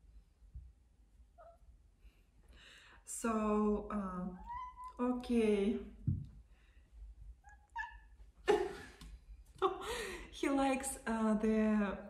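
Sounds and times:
cat meowing: 4.4s - 5.0s, 7.4s - 8.2s
soft low thump: 6.0s - 6.4s.

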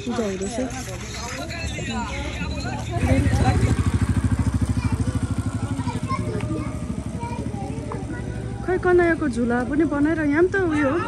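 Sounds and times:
motorcycle engine passing: 0.0s - 11.0s
people talking: 0.0s - 11.0s.

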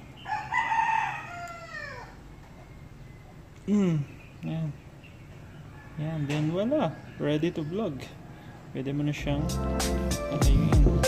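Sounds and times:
rooster crowing: 0.2s - 2.3s, 5.6s - 8.8s.

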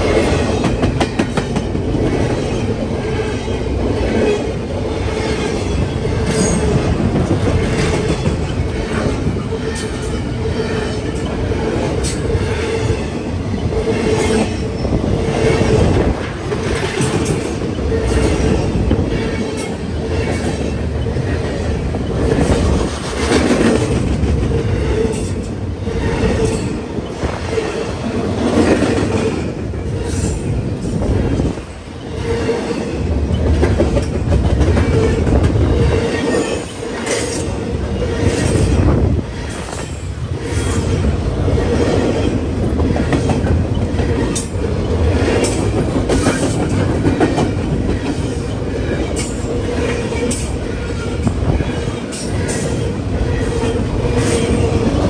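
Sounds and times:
freight train rumbling past: 0.0s - 55.0s.

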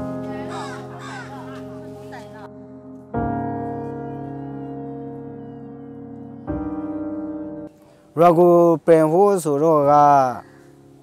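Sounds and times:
background music steady chord: 0.0s - 11.0s.

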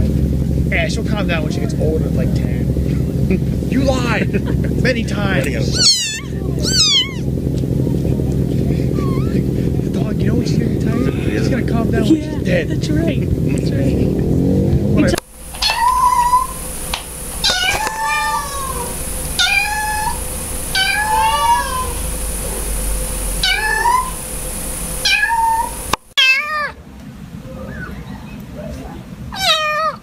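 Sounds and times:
kitten meowing: 5.6s - 7.3s, 8.9s - 9.4s, 15.6s - 16.6s, 17.4s - 22.0s, 23.4s - 24.2s, 25.0s - 26.8s, 29.3s - 30.0s
cat wavering cries: 5.6s - 7.4s, 8.9s - 9.5s, 15.6s - 16.6s, 17.4s - 22.1s, 23.4s - 24.2s, 25.0s - 26.8s, 29.3s - 30.0s.

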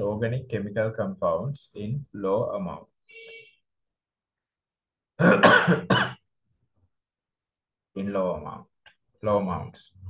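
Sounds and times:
man coughing: 5.2s - 6.2s.

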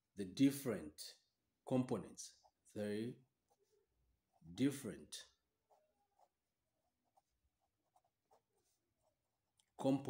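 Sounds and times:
pen scratching on paper: 5.4s - 9.6s.

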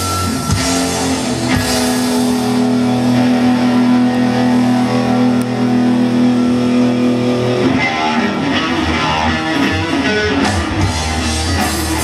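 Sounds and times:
live rock band with distorted guitars: 0.0s - 12.0s.

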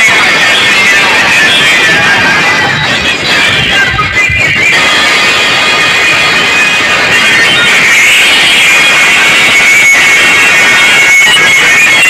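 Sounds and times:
loud sound system music: 0.0s - 12.0s
steady high tone: 0.4s - 12.0s.

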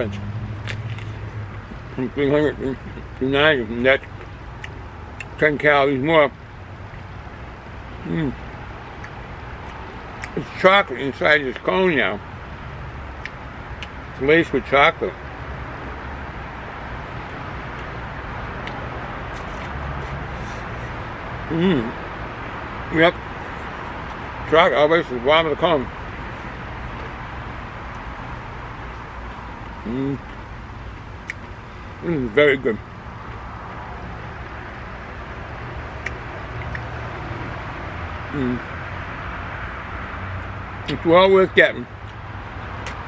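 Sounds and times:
low rumble of distant traffic: 0.0s - 43.0s.

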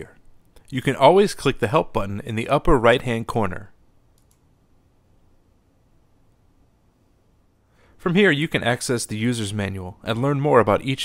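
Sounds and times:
computer mouse button clicks: 4.2s - 4.4s.

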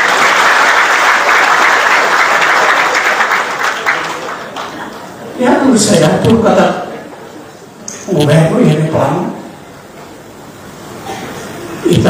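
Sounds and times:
man speaking into microphone: 5.3s - 7.0s, 8.0s - 9.5s.

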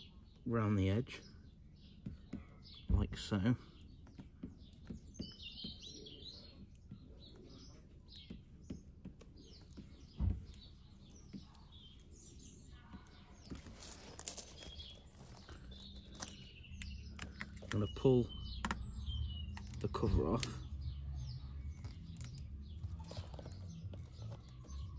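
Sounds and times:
small birds chirping: 0.0s - 24.9s
thump: 10.2s - 10.6s.

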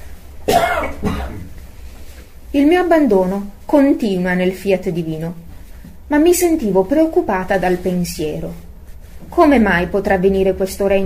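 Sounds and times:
person clearing throat: 0.5s - 1.6s.

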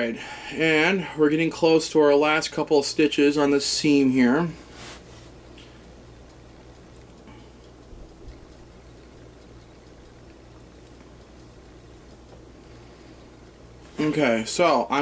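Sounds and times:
steady low hum: 0.0s - 15.0s
cloth and thread rustling: 4.6s - 5.4s.

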